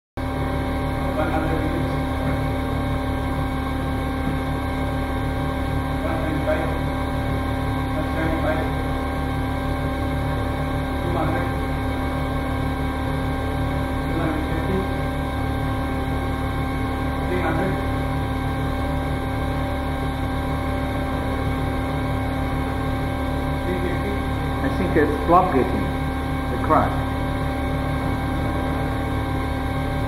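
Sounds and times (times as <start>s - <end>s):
machine hum: 0.2s - 30.0s.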